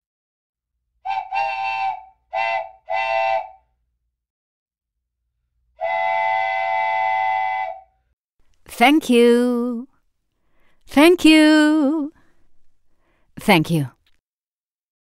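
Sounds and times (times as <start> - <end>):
steam train whistle: 1.0 - 3.7, 5.8 - 8.0.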